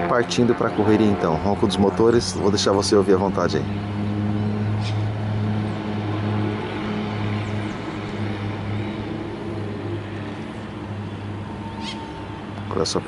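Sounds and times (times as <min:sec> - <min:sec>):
propeller airplane engines droning: 0:00.0 - 0:13.0.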